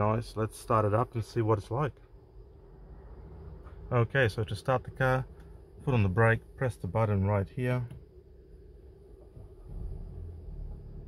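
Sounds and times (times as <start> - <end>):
car engine starting and rumbling: 0.0 - 11.0.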